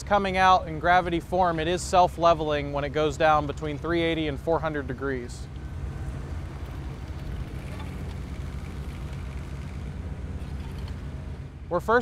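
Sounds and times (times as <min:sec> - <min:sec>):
diesel engine rumbling: 0:00.0 - 0:12.0.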